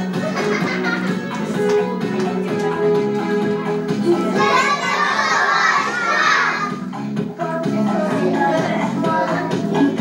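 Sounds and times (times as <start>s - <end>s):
young children's voices: 4.3s - 6.8s.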